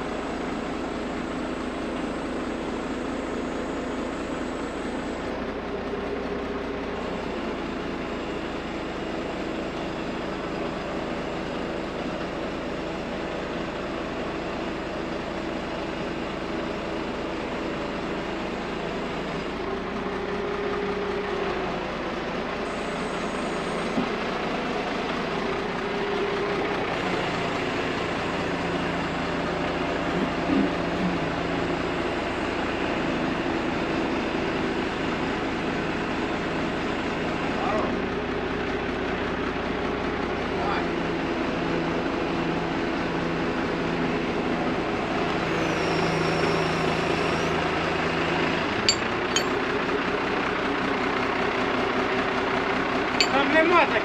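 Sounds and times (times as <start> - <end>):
truck engine running: 0.0 - 54.0
crane hydraulics humming: 17.7 - 34.8.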